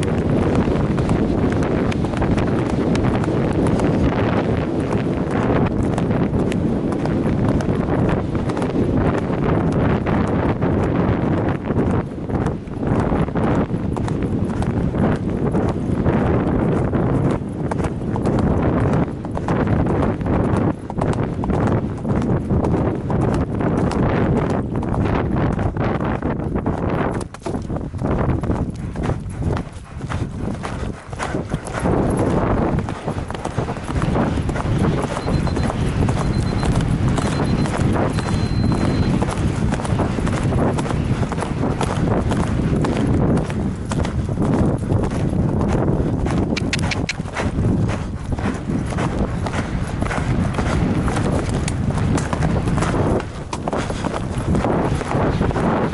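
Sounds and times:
horse hoofbeats galloping: 0.0s - 55.9s
wind rushing over microphone: 0.0s - 55.9s.

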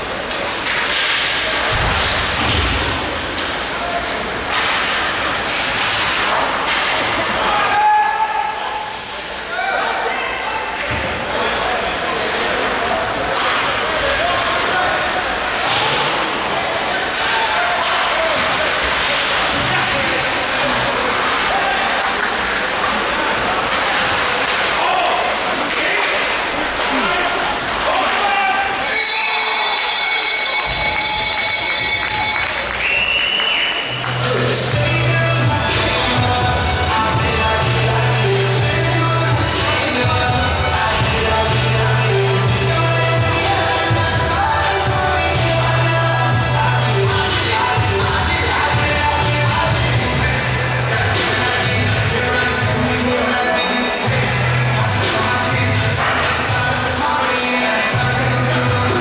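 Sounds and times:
crowd chatter and calls: 0.0s - 59.0s
hockey sticks and puck knocking: 0.2s - 3.8s, 4.4s - 7.4s.

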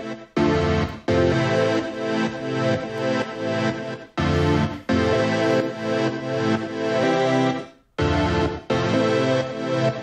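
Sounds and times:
pumping synthesizer chord pad: 0.0s - 10.0s.

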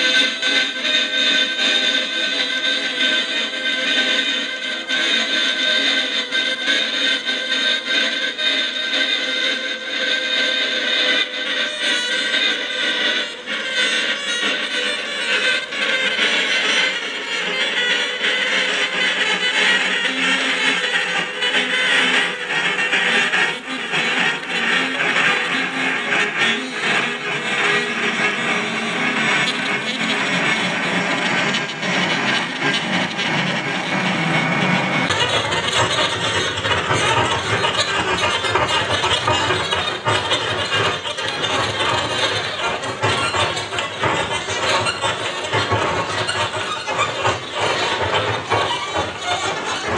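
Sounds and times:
saxophone and electronics improvisation: 0.0s - 49.9s.

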